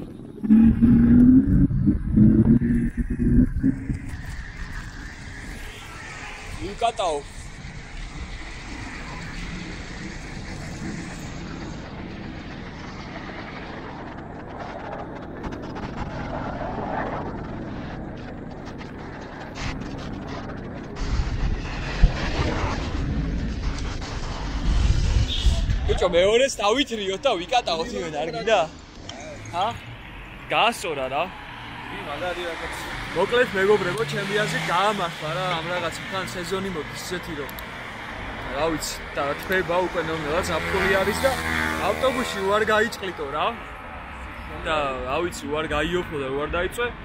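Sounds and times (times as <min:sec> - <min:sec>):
rushing air: 0:00.0 - 0:39.2
oncoming car: 0:00.0 - 0:46.4
street traffic: 0:00.0 - 0:47.0.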